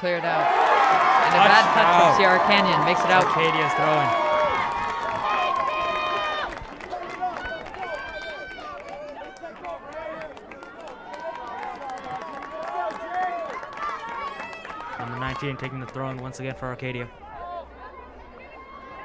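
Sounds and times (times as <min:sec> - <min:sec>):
high voices shouting: 0:00.0 - 0:06.5
light crowd noise: 0:00.0 - 0:19.0.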